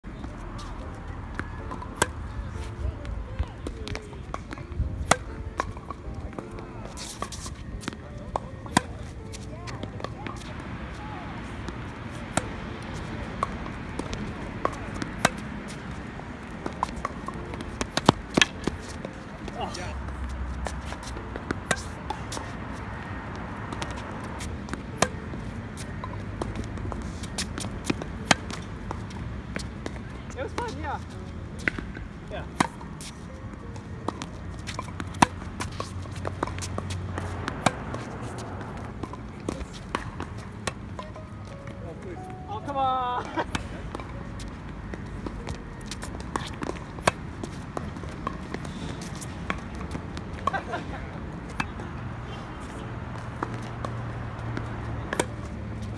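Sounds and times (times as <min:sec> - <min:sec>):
tennis ball bouncing on court: 0:00.2 - 0:55.9
tennis ball off racket strings: 0:01.6 - 0:02.8, 0:03.8 - 0:23.0, 0:23.6 - 0:52.0, 0:52.6 - 0:55.9.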